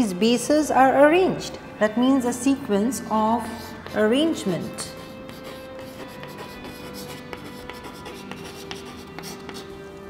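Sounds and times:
soft background music: 0.0s - 10.0s
chalk tapping and scraping on chalkboard: 3.6s - 9.7s.

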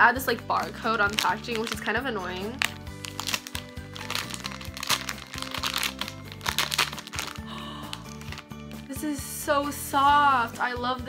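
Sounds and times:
background music: 0.0s - 11.0s
plastic packaging crinkling: 0.9s - 8.9s.

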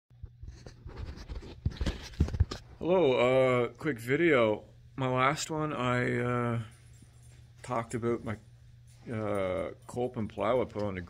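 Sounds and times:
faint steady low hum: 0.3s - 11.0s.

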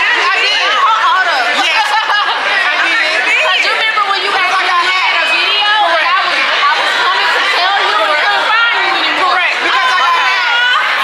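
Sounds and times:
crowd chattering: 0.0s - 11.0s
women talking over one another: 0.0s - 11.0s.

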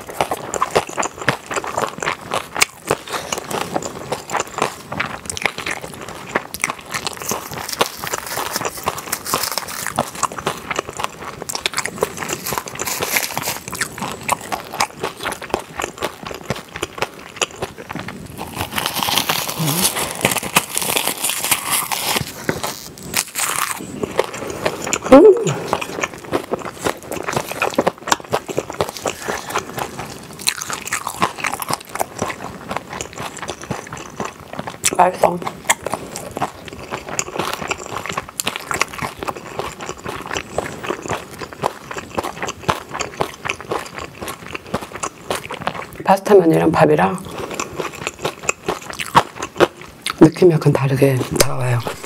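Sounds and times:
chewing crunchy seaweed: 0.0s - 52.0s.

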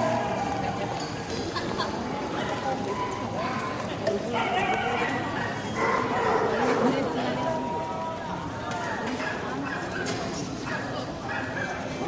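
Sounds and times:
babble of voices: 0.0s - 12.0s
dogs barking: 4.3s - 6.8s, 9.2s - 12.0s.

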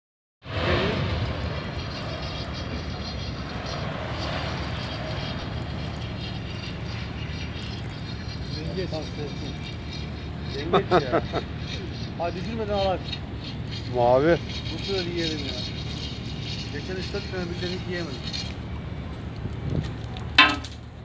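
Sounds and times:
low machinery rumble: 0.4s - 21.0s.

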